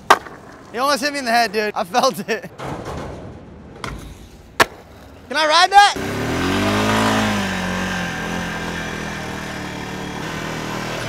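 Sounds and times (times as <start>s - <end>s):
motor vehicle engine running: 6.0s - 11.0s.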